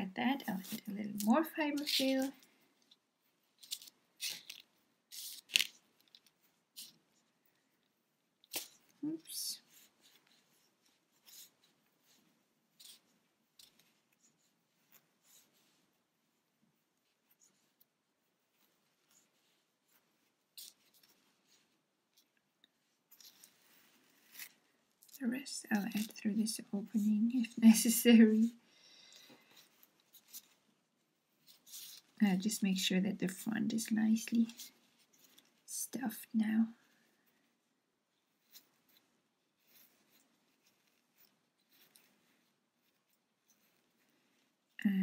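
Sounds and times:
stuffing rustling and crackling: 0.0s - 37.5s, 38.1s - 45.0s.

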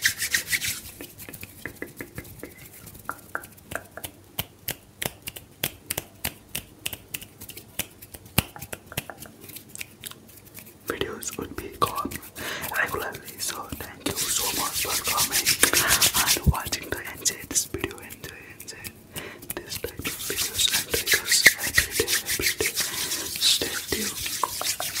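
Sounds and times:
palms rubbing together: 0.0s - 25.0s
small clicks and taps: 1.2s - 10.2s.

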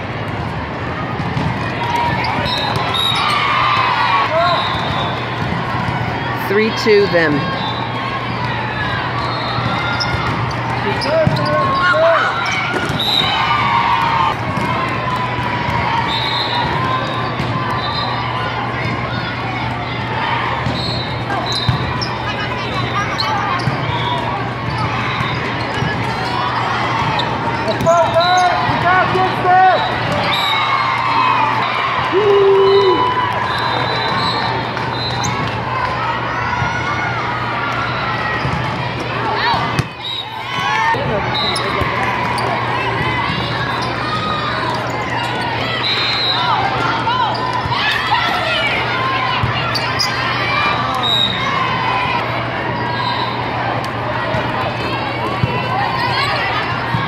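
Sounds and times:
crowd and player chatter: 0.0s - 57.0s
volleyballs struck and bouncing: 0.2s - 3.0s, 14.0s - 15.9s, 37.7s - 44.8s.

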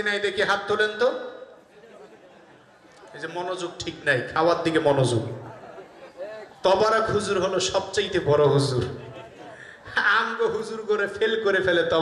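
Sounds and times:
man speaking over loudspeakers: 0.0s - 1.5s, 3.1s - 5.6s, 6.5s - 9.2s, 9.9s - 12.0s.

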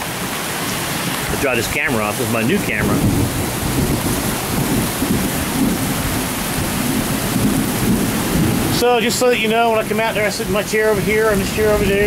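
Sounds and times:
heavy rain pouring: 0.0s - 12.0s
thunder rumbling: 0.8s - 12.0s.

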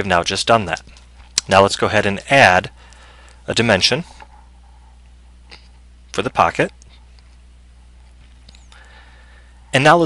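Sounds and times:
voice: 0.0s - 0.8s, 1.4s - 2.7s, 3.5s - 4.1s, 6.2s - 6.8s, 9.8s - 10.0s
low electrical hum: 0.0s - 10.0s.

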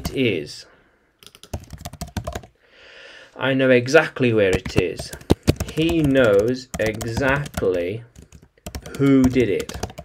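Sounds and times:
computer keyboard typing: 1.2s - 2.5s, 4.5s - 10.0s.

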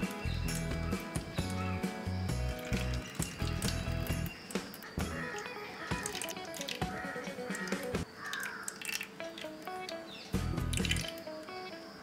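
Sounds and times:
ticking beat: 0.0s - 8.1s.

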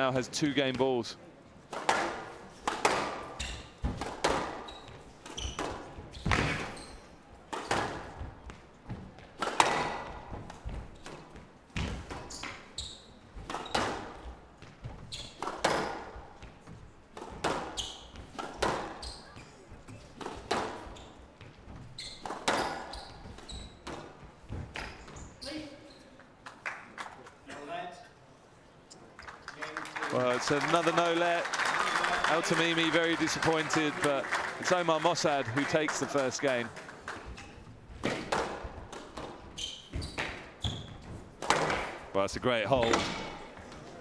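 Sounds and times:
squash ball hits: 1.7s - 6.7s, 9.4s - 10.8s, 15.4s - 16.1s, 38.0s - 39.4s, 41.4s - 42.0s.

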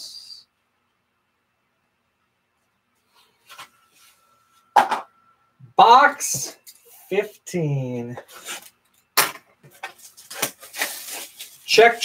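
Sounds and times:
plastic wrap crackling: 9.6s - 12.0s.

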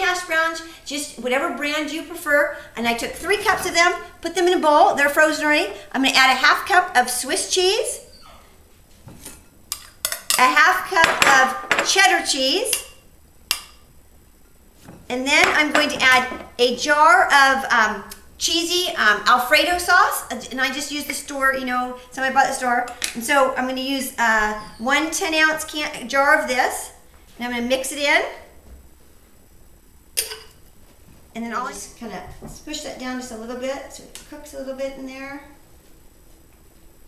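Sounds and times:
metal spoon clinking glass bowl: 30.2s - 30.5s.

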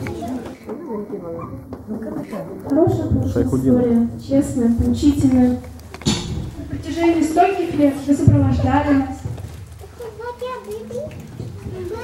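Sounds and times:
young child speaking: 9.8s - 12.0s.

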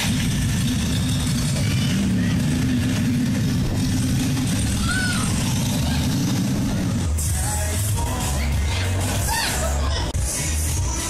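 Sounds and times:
amusement ride low rumble: 0.0s - 11.0s.

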